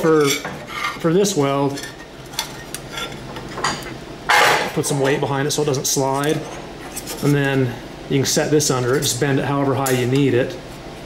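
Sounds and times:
metal plates clinking and scraping: 0:00.0 - 0:04.7.

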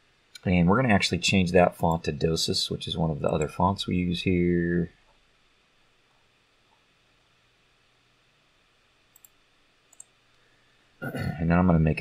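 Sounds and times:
computer mouse clicks: 0:09.1 - 0:10.2.

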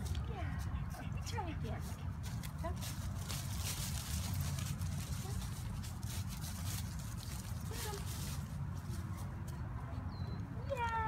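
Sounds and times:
footsteps on dry leaves: 0:01.6 - 0:09.6.

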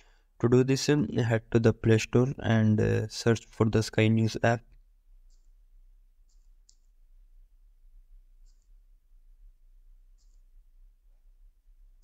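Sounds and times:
faint keyboard clicks: 0:05.2 - 0:05.6, 0:06.2 - 0:07.0, 0:08.4 - 0:08.8, 0:10.1 - 0:10.6.

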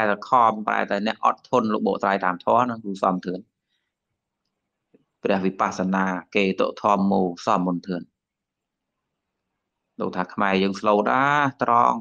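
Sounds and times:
man speaking: 0:00.0 - 0:03.4, 0:05.2 - 0:08.0, 0:10.0 - 0:12.0.

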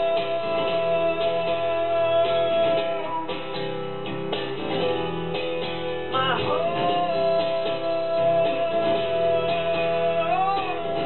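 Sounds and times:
person singing wordlessly: 0:00.0 - 0:03.5, 0:06.1 - 0:11.0
acoustic guitar strummed: 0:00.0 - 0:11.0.

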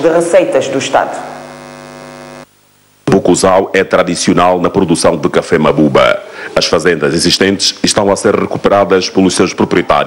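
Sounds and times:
electrical hum: 0:00.0 - 0:06.5.

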